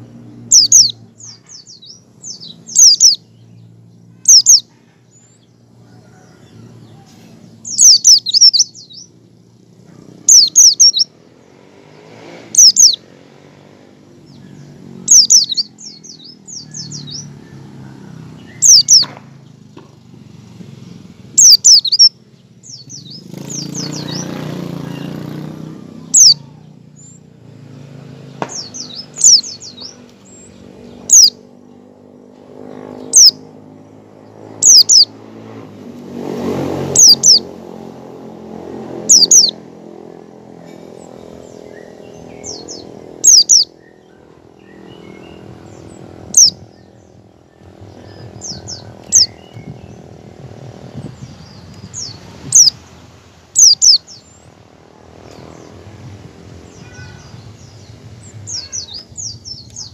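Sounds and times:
bird giving sharp high calls: 0:00.5 - 0:03.3, 0:04.1 - 0:09.2, 0:09.8 - 0:11.3, 0:12.3 - 0:13.1, 0:14.2 - 0:17.5, 0:18.3 - 0:19.3, 0:21.3 - 0:27.2, 0:28.5 - 0:31.5, 0:32.7 - 0:33.6, 0:34.3 - 0:35.2, 0:36.8 - 0:37.6, 0:38.9 - 0:50.2, 0:51.2 - 0:52.8, 0:53.6 - 0:54.5, 0:56.6 - 0:59.9.

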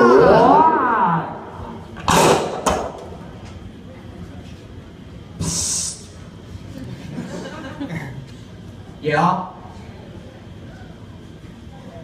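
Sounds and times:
sliding voice-like wail: 0:00.0 - 0:01.6
harsh hissing noise burst: 0:05.4 - 0:06.2.

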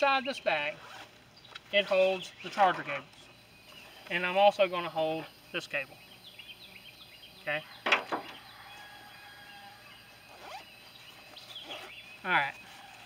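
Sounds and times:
birds chirping: 0:00.0 - 0:13.0
cable rustling in soft bag: 0:10.0 - 0:13.0.

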